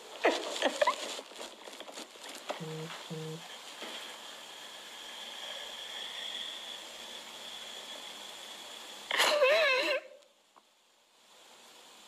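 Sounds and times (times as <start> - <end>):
background hiss: 0.0 - 12.0
high-pitched whine: 2.3 - 10.4.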